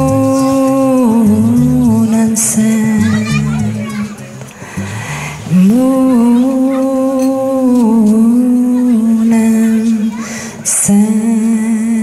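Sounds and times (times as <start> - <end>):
woman singing long note: 5.5 - 12.0.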